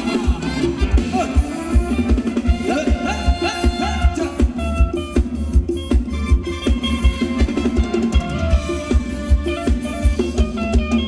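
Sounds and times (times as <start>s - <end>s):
live band playing dance music: 0.0s - 11.0s.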